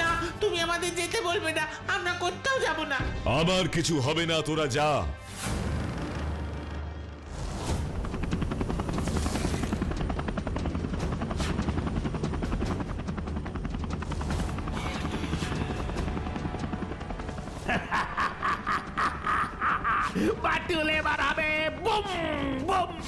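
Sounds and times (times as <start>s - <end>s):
background music: 0.0s - 23.0s
cartoon helicopter rotor chop: 7.5s - 16.6s.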